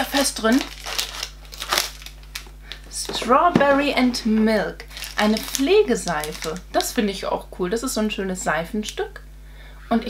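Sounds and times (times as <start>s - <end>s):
cardboard crinkling: 0.0s - 6.6s.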